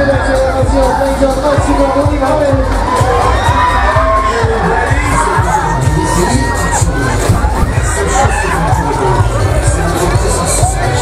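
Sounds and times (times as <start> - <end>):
loud music with steady beat: 0.0 - 11.0
riders screaming and shouting: 0.0 - 11.0.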